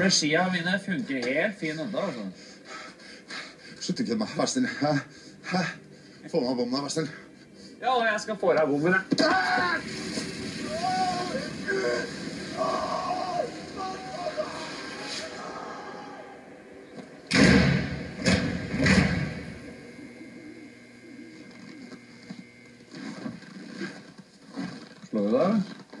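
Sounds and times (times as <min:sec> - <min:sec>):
voices from television: 0:00.0 - 0:02.4, 0:03.7 - 0:26.0
loud bangs: 0:09.2 - 0:15.4, 0:17.0 - 0:19.8.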